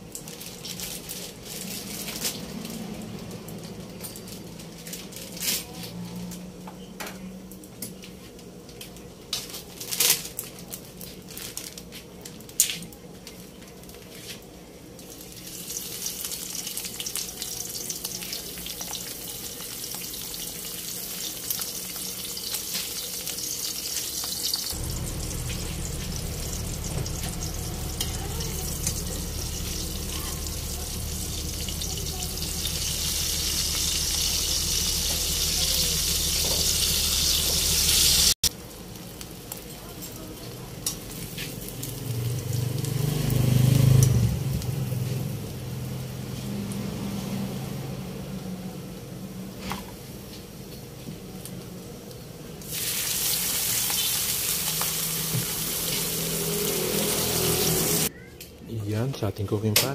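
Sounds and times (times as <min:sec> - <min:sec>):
fish sizzling in hot oil: 0:00.0 - 0:03.6, 0:15.0 - 0:47.4, 0:50.0 - 0:58.1
low hum: 0:24.7 - 0:38.4
low rumble: 0:24.7 - 0:38.4.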